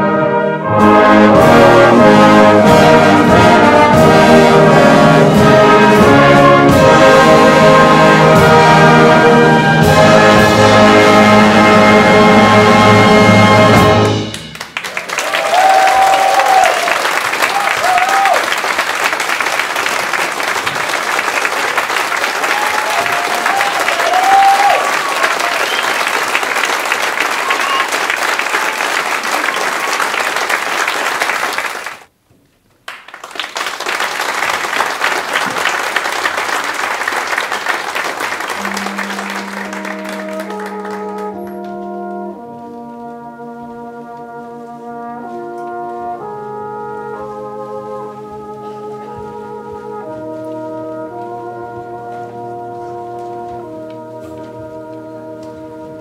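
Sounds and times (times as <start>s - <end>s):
brass band playing held chords: 0.0s - 31.9s, 34.3s - 56.0s
audience applauding: 14.2s - 32.1s, 32.8s - 41.9s
audience cheering: 14.6s - 32.0s, 33.2s - 41.4s.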